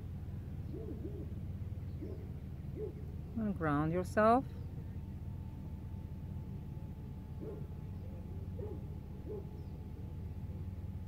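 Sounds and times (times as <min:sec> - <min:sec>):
steady low rumble: 0:00.0 - 0:11.0
bird hooting: 0:00.6 - 0:03.0.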